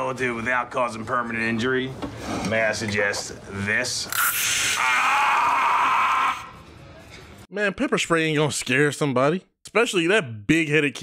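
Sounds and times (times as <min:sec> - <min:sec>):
man screaming in pain: 0:04.8 - 0:06.5.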